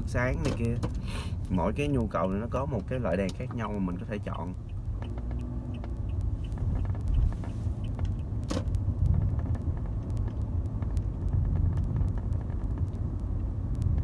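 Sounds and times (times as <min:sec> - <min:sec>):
car engine and road rumble: 0:00.0 - 0:14.0.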